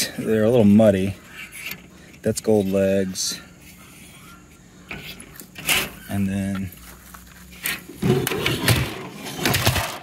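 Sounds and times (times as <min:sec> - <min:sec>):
metal chassis knocking and scraping: 0:07.5 - 0:10.0.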